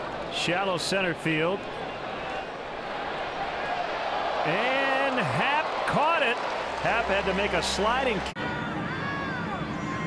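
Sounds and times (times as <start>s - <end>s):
stadium background noise: 0.0s - 10.0s
man commentating: 4.4s - 8.3s.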